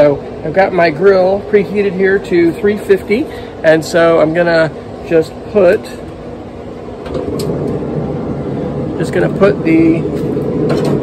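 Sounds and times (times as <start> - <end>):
pellet grill rushing noise: 6.9 - 11.0.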